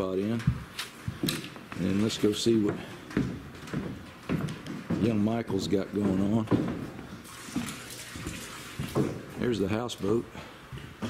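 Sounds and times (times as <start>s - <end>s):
soft footsteps on a deck: 0.0s - 7.8s, 8.7s - 11.0s
water sloshing and trickling: 7.2s - 9.3s.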